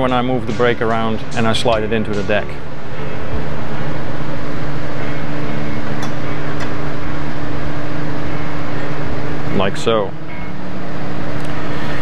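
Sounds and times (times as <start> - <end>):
low steady drone: 0.0 - 12.0
workshop fan rushing: 0.0 - 12.0.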